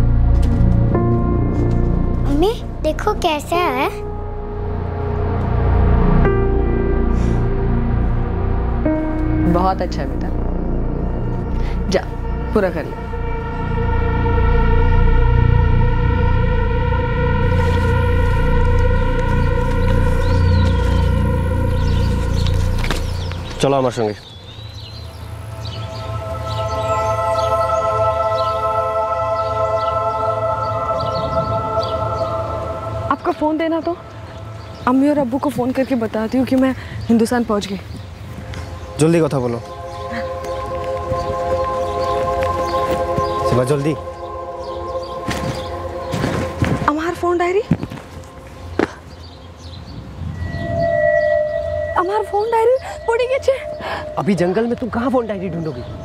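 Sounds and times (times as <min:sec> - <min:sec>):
sustained synthesizer chord: 0:00.0 - 0:35.7, 0:38.4 - 0:56.0
low rumbling score: 0:38.2 - 0:56.0
sustained high note: 0:50.2 - 0:55.8.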